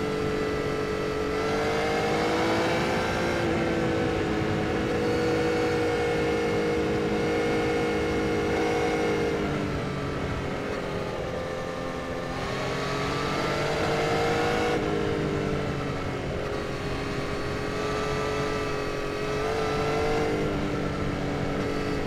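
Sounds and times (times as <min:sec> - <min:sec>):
motorcycle engine cruising: 0:00.0 - 0:22.0
wind and road noise: 0:00.0 - 0:22.0.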